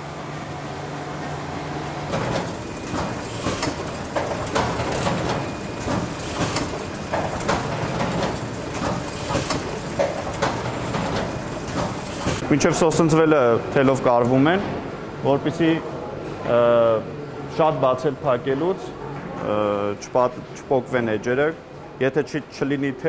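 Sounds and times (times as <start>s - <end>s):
machinery humming: 0.0s - 14.0s
machinery clacking and knocking: 2.1s - 12.4s.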